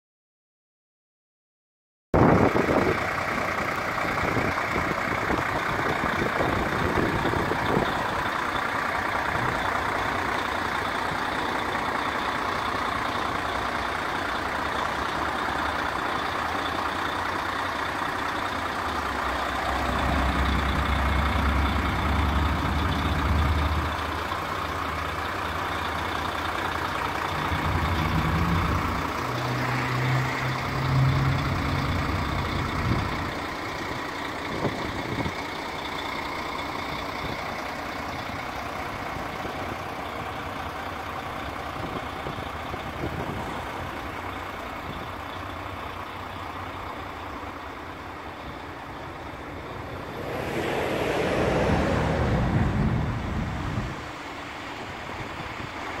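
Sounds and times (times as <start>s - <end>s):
diesel truck engine idling: 2.2s - 56.0s
outdoor noise: 2.2s - 56.0s
low hum: 49.0s - 54.0s.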